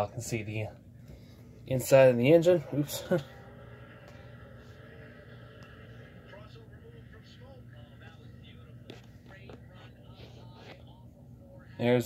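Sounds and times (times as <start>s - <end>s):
low hum: 0.7s - 11.8s
faint voices murmuring: 2.7s - 11.8s.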